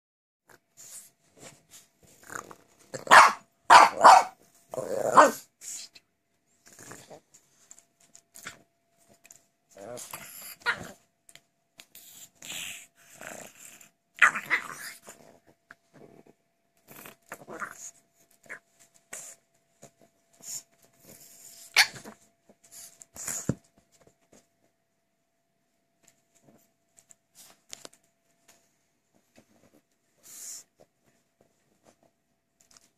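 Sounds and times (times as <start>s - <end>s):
dogs growling and barking: 2.1s - 5.5s, 12.4s - 18.6s
dog barking sharply: 3.1s - 4.4s.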